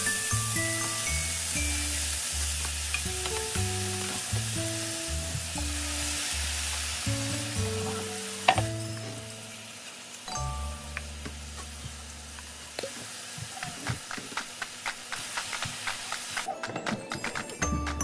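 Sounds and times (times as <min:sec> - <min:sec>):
food sizzling in a pan: 0:00.0 - 0:16.5.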